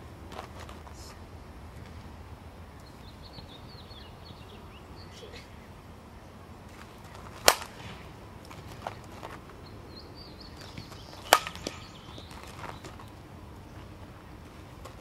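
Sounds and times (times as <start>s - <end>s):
birds chirping faintly: 0.7s - 15.0s
bat striking softball: 6.8s - 9.0s, 10.6s - 13.0s.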